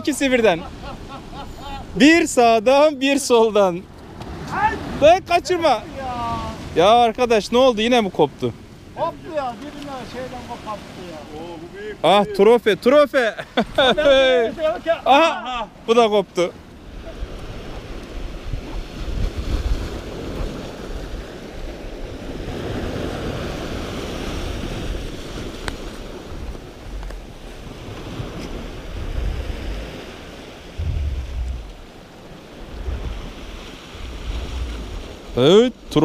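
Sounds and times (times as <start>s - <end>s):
waves breaking on rocks: 0.0s - 36.0s
wind buffeting microphone: 16.7s - 35.3s.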